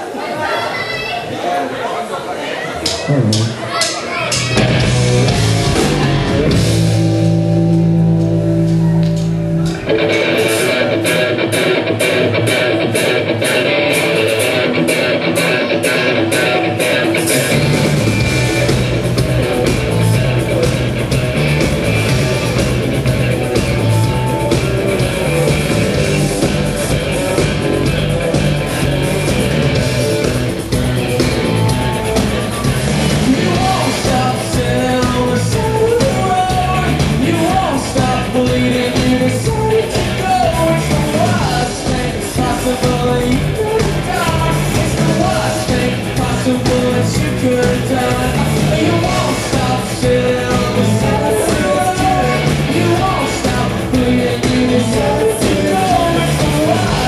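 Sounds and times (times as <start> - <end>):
drums: 2.7 - 57.0
electric guitars strummed: 2.8 - 57.0
live rock band playing: 2.8 - 57.0
bass guitar: 2.9 - 3.7, 4.3 - 57.0
man singing: 33.2 - 57.0.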